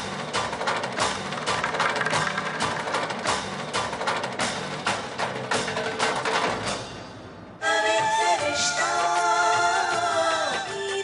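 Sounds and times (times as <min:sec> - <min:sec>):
percussion strikes: 0:00.4 - 0:07.2.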